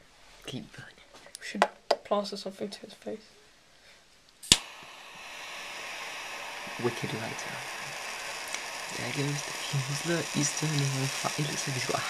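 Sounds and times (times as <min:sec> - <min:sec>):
lighter click: 0:04.4 - 0:06.8, 0:07.6 - 0:09.6
gas flame hissing: 0:04.4 - 0:12.0.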